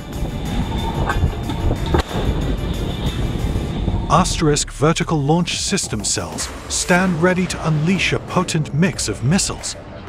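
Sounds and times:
low dense background music: 0:00.0 - 0:10.0.

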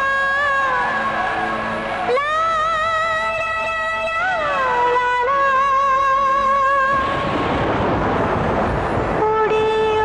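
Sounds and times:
loud even rushing noise: 0:06.6 - 0:10.0.

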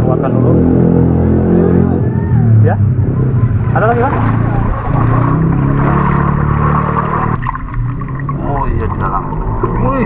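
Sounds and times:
motor engine running: 0:03.1 - 0:10.0.

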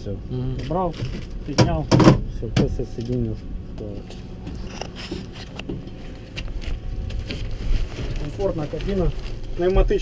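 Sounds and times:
steady low rumble: 0:00.0 - 0:10.0
rustling: 0:04.0 - 0:10.0.

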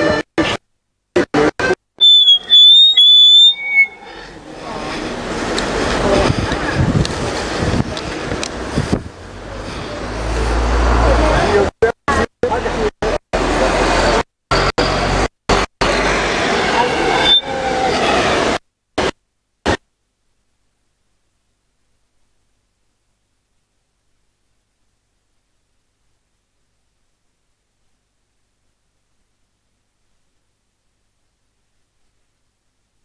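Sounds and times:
noisy outdoor background: 0:00.0 - 0:33.0
street background noise: 0:00.0 - 0:33.0
indistinct voices: 0:01.2 - 0:15.2, 0:15.8 - 0:18.6
high whistling tone: 0:02.0 - 0:04.3, 0:17.1 - 0:18.0.

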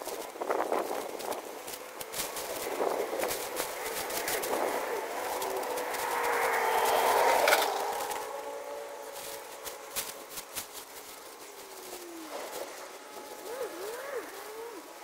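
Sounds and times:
plastic sheeting crinkling: 0:00.0 - 0:15.0.

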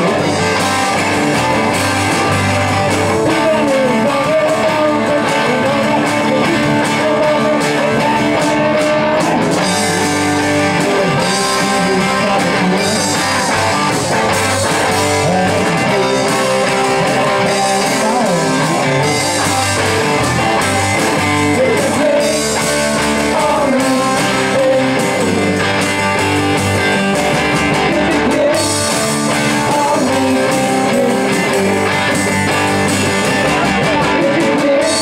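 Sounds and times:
lead vocal singing: 0:00.0 - 0:35.0
rock band playing: 0:00.0 - 0:35.0.

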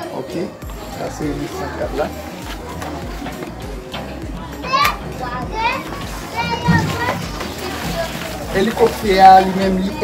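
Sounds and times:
children calling out in play: 0:02.5 - 0:08.4.

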